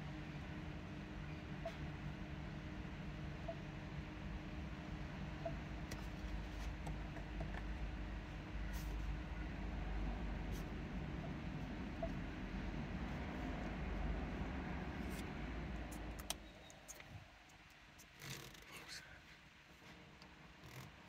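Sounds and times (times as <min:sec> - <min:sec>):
low cabin hum: 0:00.0 - 0:21.0.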